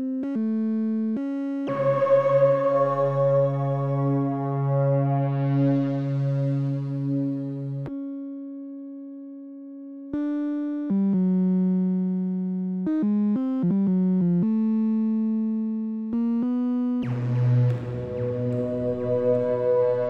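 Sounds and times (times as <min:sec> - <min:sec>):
synthesizer melody: 0:01.7 - 0:07.9, 0:17.0 - 0:20.0.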